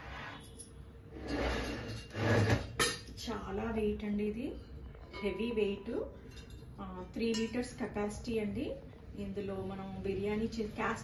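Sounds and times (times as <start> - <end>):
iron pot and lid clanking: 1.3 - 3.1
woman's voice: 3.2 - 6.2, 6.8 - 11.0.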